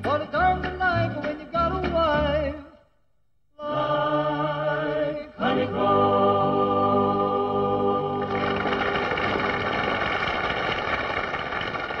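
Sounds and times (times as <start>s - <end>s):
audience applauding: 8.2s - 12.0s.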